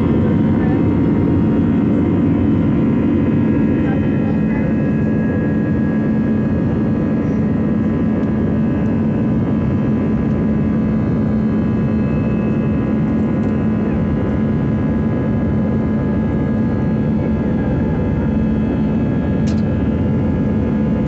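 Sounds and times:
constant low hum: 0:00.0 - 0:21.0
jet engines roaring: 0:00.0 - 0:21.0.

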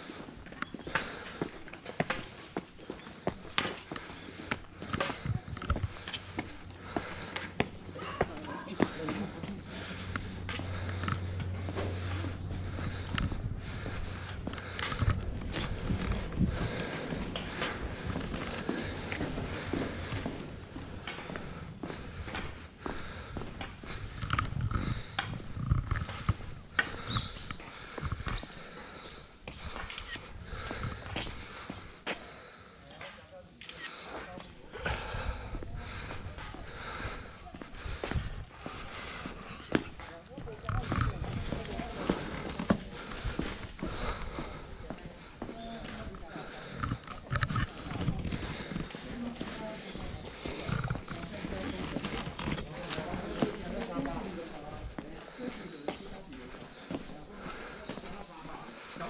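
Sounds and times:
footsteps on stone: 0:00.0 - 0:59.0
indistinct voices: 0:00.0 - 0:59.0
low rumbling microphone noise: 0:09.2 - 0:32.0, 0:34.6 - 0:53.4.

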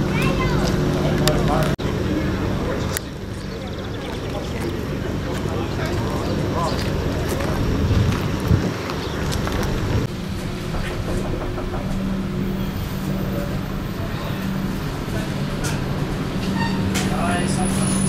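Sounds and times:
diesel railcar engine idling: 0:00.0 - 0:18.0
indistinct voices: 0:00.0 - 0:18.0.

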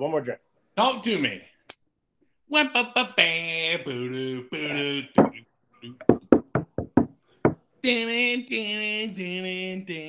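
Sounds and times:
sharp knocks: 0:06.0 - 0:07.6.

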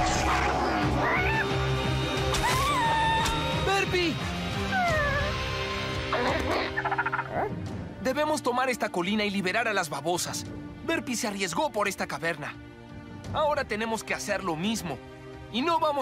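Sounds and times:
dramatic background music: 0:00.0 - 0:16.0
cartoon creature squeaking and crying: 0:04.7 - 0:05.4.

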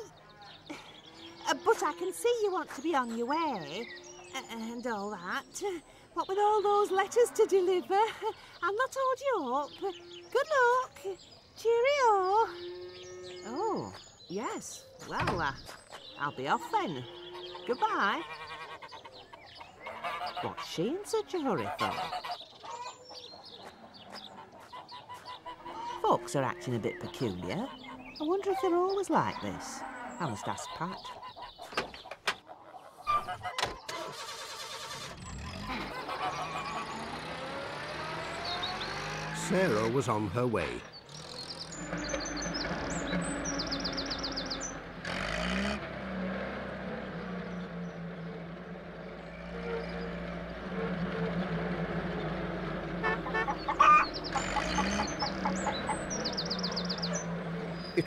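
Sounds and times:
bird chirping: 0:00.0 - 0:58.0
chickens clucking: 0:13.5 - 0:58.0
van engine running: 0:34.1 - 0:58.0.

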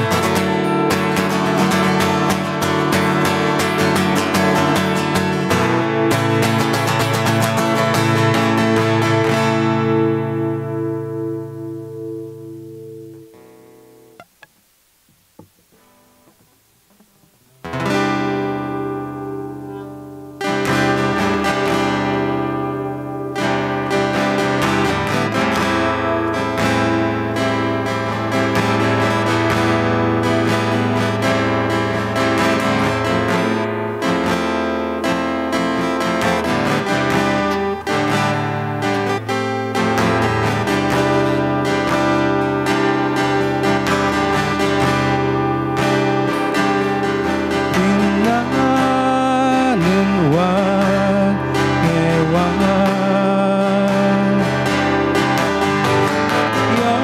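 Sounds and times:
acoustic guitar strumming: 0:00.0 - 0:57.0.

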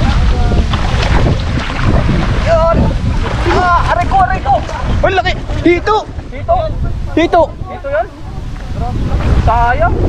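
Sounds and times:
water sloshing and splashing: 0:00.0 - 0:09.6
wind rumbling on microphone: 0:00.0 - 0:10.0.

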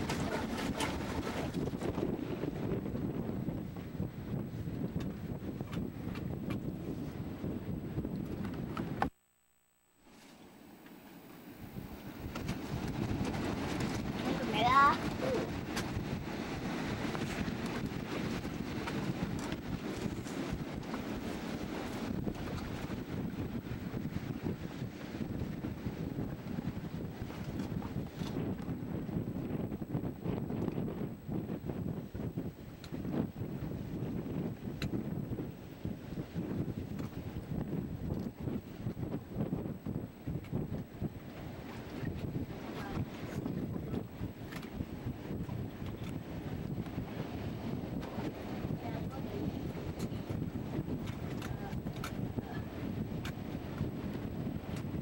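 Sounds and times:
wind buffeting microphone: 0:00.0 - 0:09.1, 0:11.3 - 0:55.0
water noise: 0:00.0 - 0:55.0.

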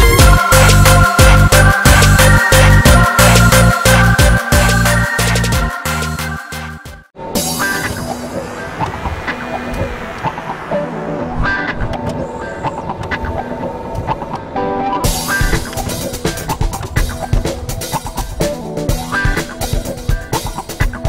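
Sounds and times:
background music with drum beat: 0:00.0 - 0:08.3, 0:15.0 - 0:21.0.

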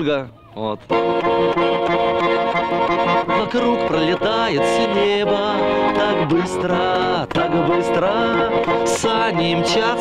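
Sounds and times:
button accordion playing: 0:00.9 - 0:10.0.

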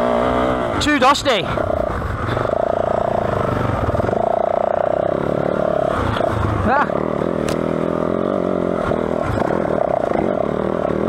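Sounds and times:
dirt bike engine running: 0:00.0 - 0:11.0.

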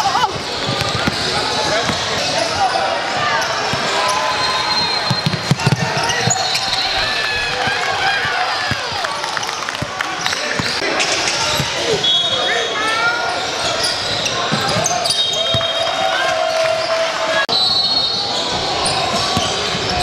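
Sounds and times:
spectators' voices in echoing hall: 0:00.0 - 0:20.0
basketball bouncing on court: 0:00.2 - 0:02.3, 0:05.0 - 0:06.8, 0:07.6 - 0:09.1
sneaker squeaks: 0:00.2 - 0:07.2, 0:10.1 - 0:16.1, 0:17.5 - 0:20.0.

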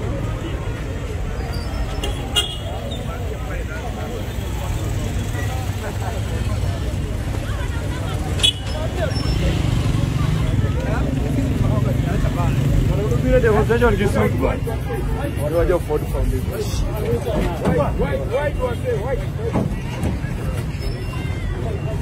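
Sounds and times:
traffic engine rumble: 0:00.0 - 0:22.0
voices in background: 0:00.0 - 0:22.0.

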